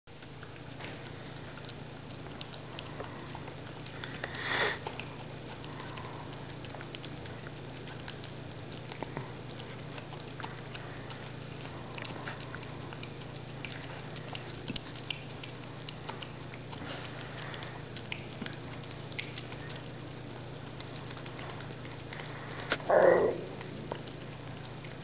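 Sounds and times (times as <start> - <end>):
dog chewing and licking: 0.1 - 25.0
low hum: 0.1 - 25.0.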